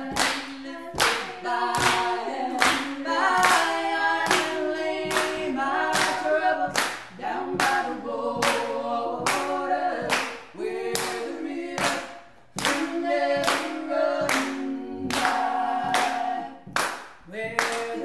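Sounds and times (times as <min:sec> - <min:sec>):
hand claps: 0:00.0 - 0:18.0
women singing a cappella: 0:00.0 - 0:18.0.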